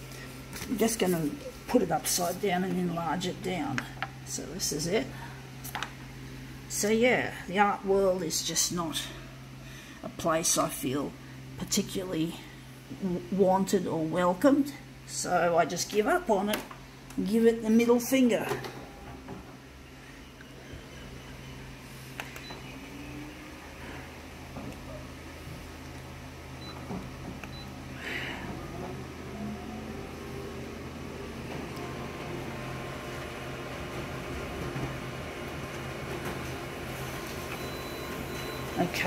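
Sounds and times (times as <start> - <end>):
copier machine hum: 0.0 - 39.0.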